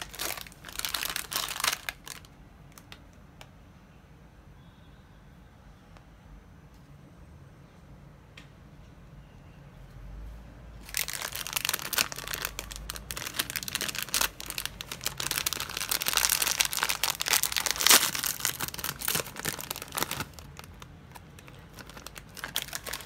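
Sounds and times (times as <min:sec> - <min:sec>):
foil snack pouch crinkling and tearing: 0:00.0 - 0:02.3, 0:10.8 - 0:23.0.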